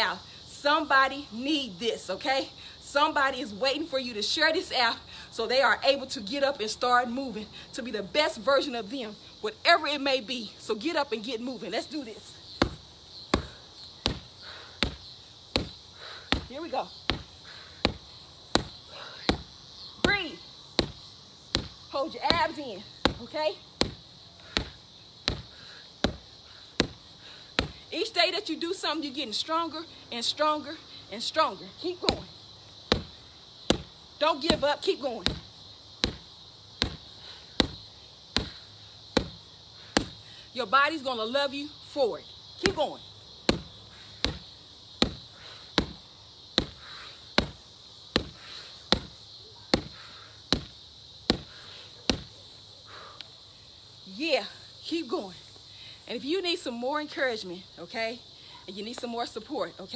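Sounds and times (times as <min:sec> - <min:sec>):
punches thudding on punching bag: 0:12.6 - 0:27.0, 0:27.6 - 0:27.8, 0:32.0 - 0:32.3, 0:32.9 - 0:39.4, 0:42.6 - 0:46.0, 0:46.6 - 0:46.8, 0:47.4 - 0:52.3.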